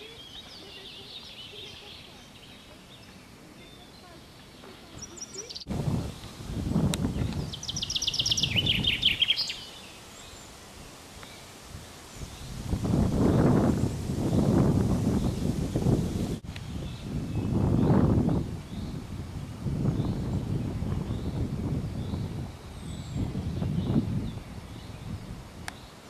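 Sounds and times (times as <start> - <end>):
songbird trilling: 0.0 - 5.7, 7.0 - 10.5
wind buffeting microphone: 4.6 - 9.6, 11.6 - 26.0.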